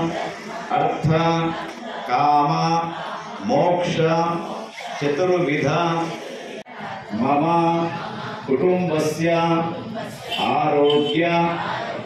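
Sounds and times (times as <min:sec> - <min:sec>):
man chanting: 0:00.7 - 0:06.1, 0:07.1 - 0:09.7, 0:10.4 - 0:11.6.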